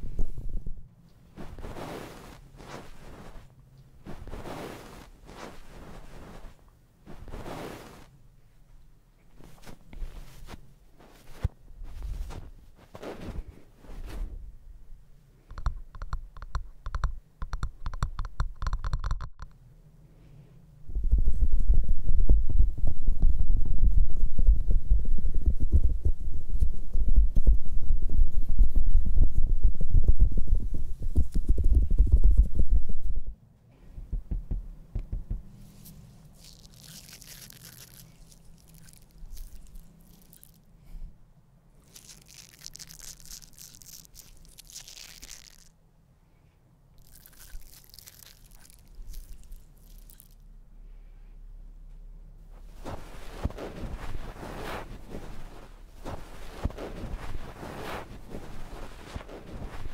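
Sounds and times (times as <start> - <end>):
hands rubbing on microphone: 0.0 - 8.2, 9.4 - 14.4, 34.0 - 40.7, 41.8 - 45.7, 47.0 - 50.4, 52.6 - 59.9.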